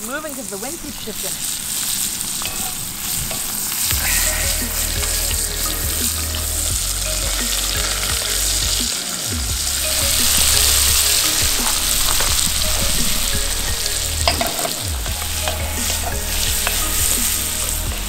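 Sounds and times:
food sizzling in a skillet: 0.0 - 18.0.

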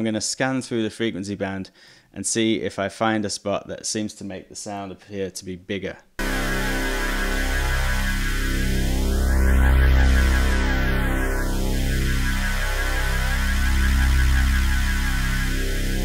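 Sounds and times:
synth tone with sweeping filter: 6.2 - 16.0.

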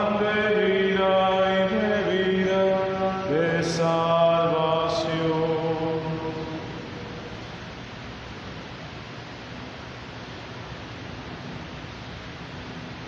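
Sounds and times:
slow sung hymn: 0.0 - 7.8.

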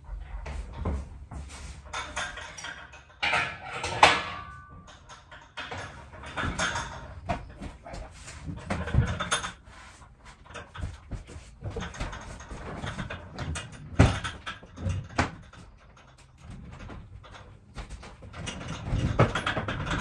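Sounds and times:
metal clanks and scrapes: 0.0 - 20.0.

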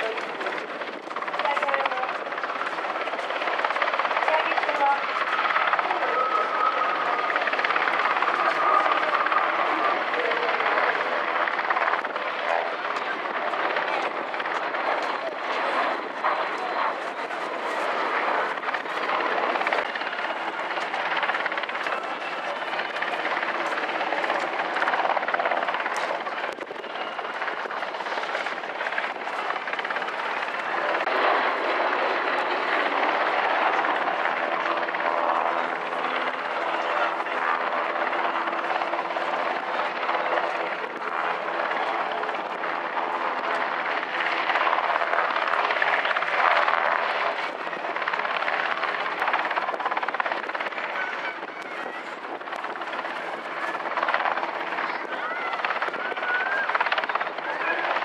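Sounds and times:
helicopter hovering: 0.0 - 58.0.

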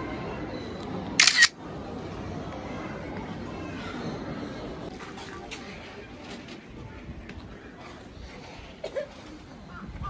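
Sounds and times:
camera shutter snap: 1.2 - 1.5.

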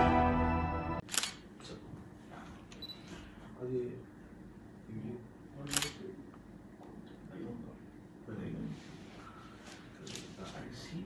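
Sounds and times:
men talking quietly: 3.4 - 11.0.

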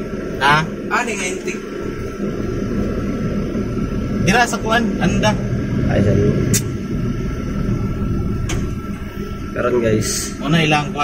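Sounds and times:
van engine idling: 0.0 - 11.0.

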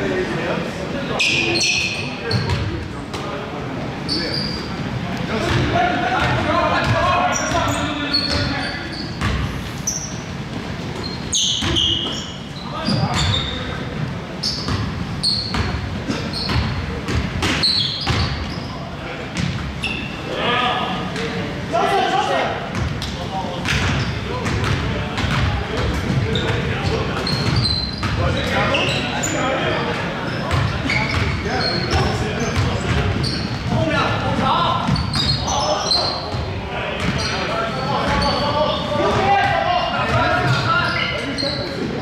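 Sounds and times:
sneaker squeaks: 1.1 - 3.3, 4.0 - 21.4, 22.7 - 42.0
basketball bouncing on wooden floor: 22.7 - 26.6.

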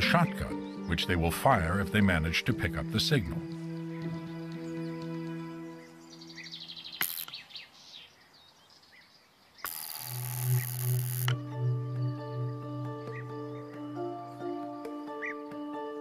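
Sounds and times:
background music sustained tones: 0.0 - 7.2, 9.7 - 16.0
sharp click: 7.0 - 7.4
spark-gap transmitter crackling buzz: 7.0 - 7.4, 9.6 - 11.4.

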